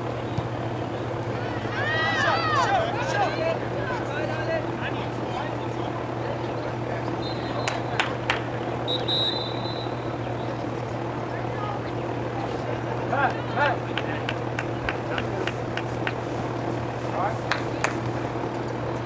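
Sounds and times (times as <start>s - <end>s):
distant voices: 0.0s - 19.0s
steady low hum: 0.0s - 19.0s.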